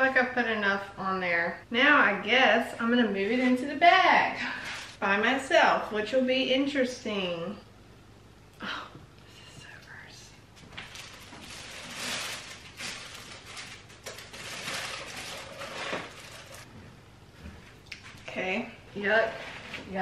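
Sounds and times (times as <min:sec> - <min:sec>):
plastic bag rustling and crinkling: 0:04.4 - 0:05.0, 0:10.6 - 0:16.7.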